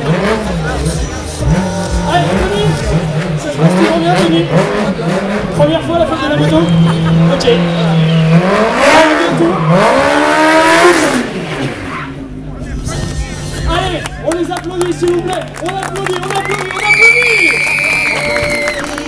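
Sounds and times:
quad engine revving: 0:00.0 - 0:11.9.

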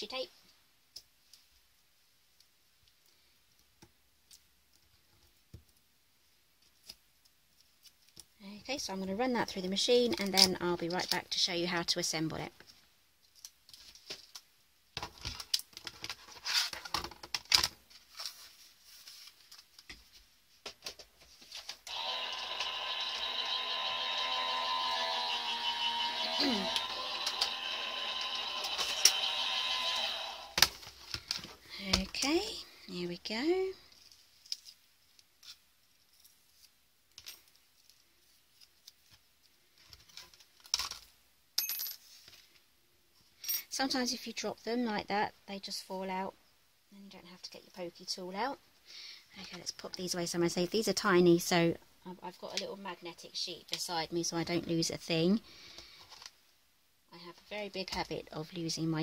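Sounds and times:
electric die-cutting machine running: 0:21.9 - 0:30.6.

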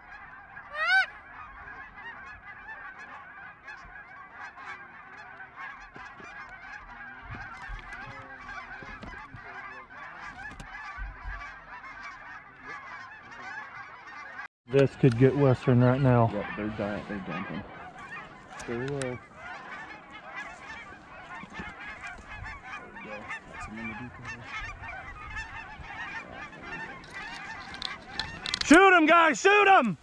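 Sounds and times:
flock of geese honking: 0:00.0 - 0:30.0.

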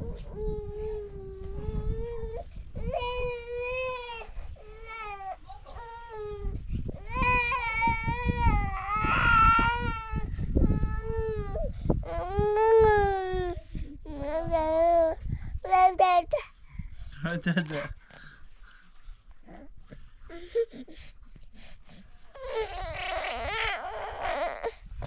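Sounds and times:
small child crying: 0:00.3 - 0:16.4, 0:22.4 - 0:24.9.

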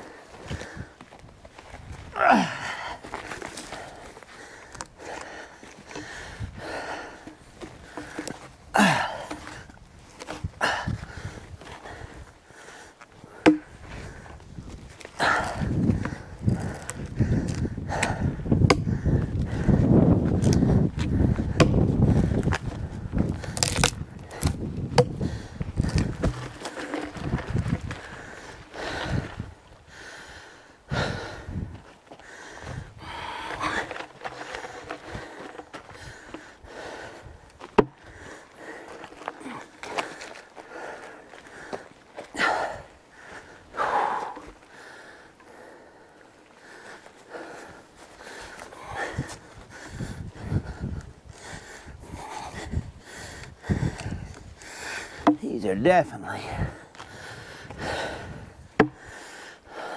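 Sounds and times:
log rolling over gravel: 0:00.2 - 0:17.7, 0:18.6 - 0:29.8, 0:31.6 - 0:45.7
footsteps on gravel: 0:19.1 - 0:29.8, 0:31.6 - 0:45.0.

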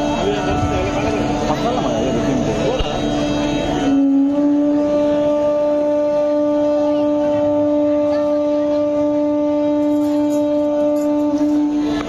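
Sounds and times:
flute holding a long note: 0:00.0 - 0:12.0.

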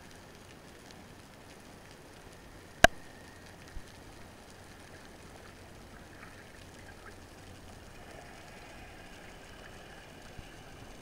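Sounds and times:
underwater low rumble: 0:00.0 - 0:11.0.

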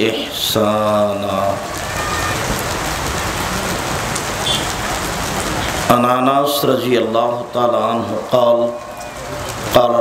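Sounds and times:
steady hiss of noise: 0:00.0 - 0:10.0.

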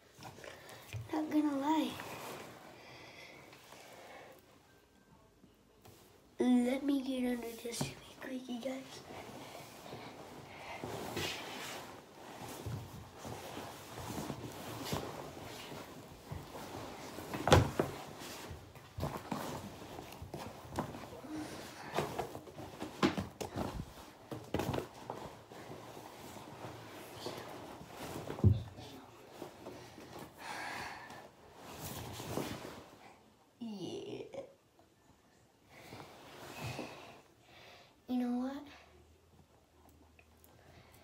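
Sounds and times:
clothing rustling: 0:00.0 - 0:04.4, 0:05.8 - 0:33.3, 0:35.7 - 0:37.3.

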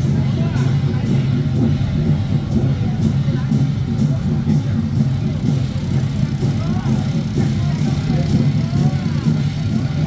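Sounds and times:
percussion music with steady beat: 0:00.0 - 0:10.0.

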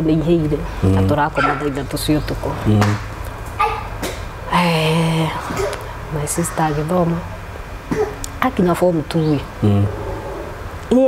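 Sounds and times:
person talking: 0:00.0 - 0:03.0, 0:08.3 - 0:09.9.

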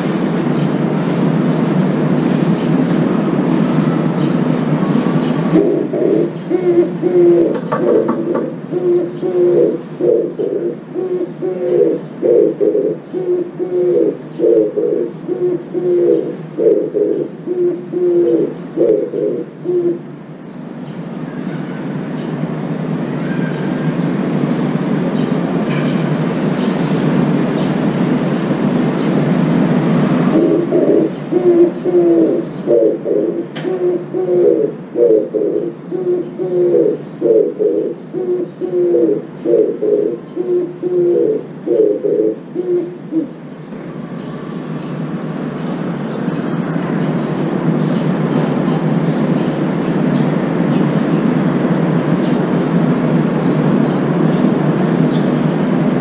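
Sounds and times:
dove cooing: 0:00.0 - 0:20.1, 0:25.7 - 0:44.7.

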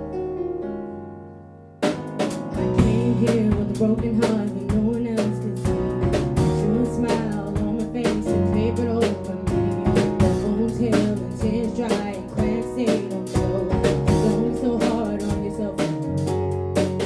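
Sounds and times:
drum kit: 0:01.8 - 0:17.0
live band playing: 0:01.8 - 0:17.0
lead vocal: 0:02.6 - 0:16.3.

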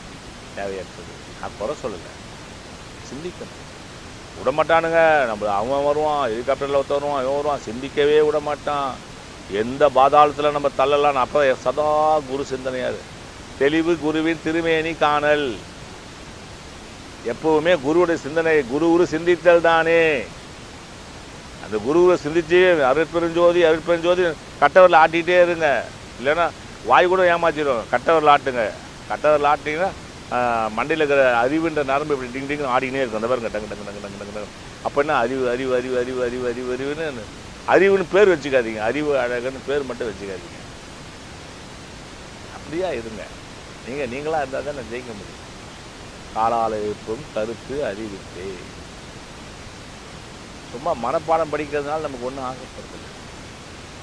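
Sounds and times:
background hiss: 0:00.0 - 0:54.0
man speaking: 0:00.6 - 0:02.2, 0:03.1 - 0:03.5, 0:04.4 - 0:13.0, 0:13.6 - 0:15.6, 0:17.3 - 0:20.3, 0:21.6 - 0:40.6, 0:42.5 - 0:45.3, 0:46.4 - 0:48.7, 0:50.7 - 0:53.1
man talking: 0:00.6 - 0:02.2, 0:03.0 - 0:03.5, 0:04.4 - 0:13.0, 0:13.6 - 0:15.6, 0:17.2 - 0:20.3, 0:21.6 - 0:40.6, 0:42.5 - 0:45.3, 0:46.4 - 0:48.7, 0:50.7 - 0:53.1.

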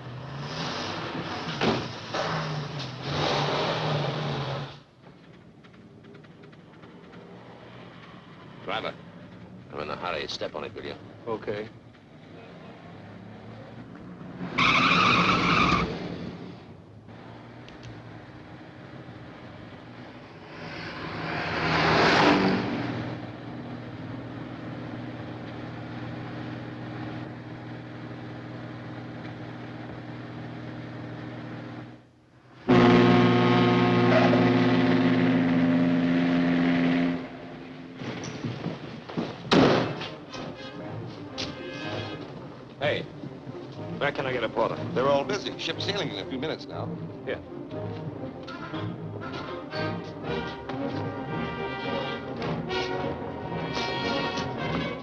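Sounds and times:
car engine revving: 0:00.0 - 0:55.0
tyres squealing: 0:00.8 - 0:16.5, 0:36.8 - 0:47.2
film score: 0:01.0 - 0:55.0
ship's deep whistle: 0:32.7 - 0:37.5.

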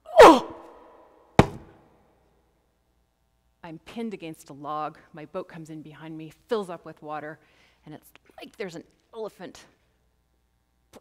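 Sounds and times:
sharp knock: 0:01.4 - 0:01.8.

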